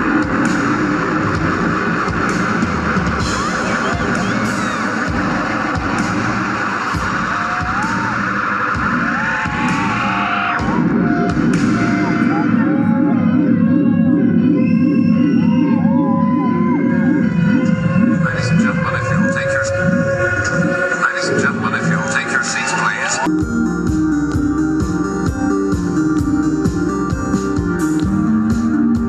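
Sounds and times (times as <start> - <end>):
steady drum beat: 0.0 - 20.1
electronic pop band playing: 0.0 - 29.0
fast-pulsing low drone: 0.0 - 29.0
wavering gliding tones: 10.6 - 23.3.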